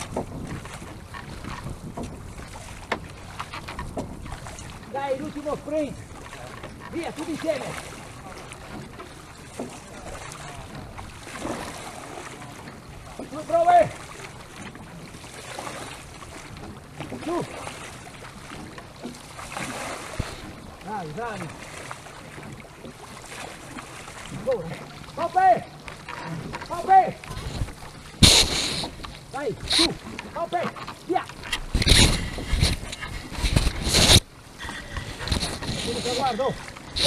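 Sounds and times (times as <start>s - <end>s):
water sloshing around oars: 0.0s - 37.0s
flag rubbing over microphone: 27.4s - 30.0s, 31.5s - 37.0s.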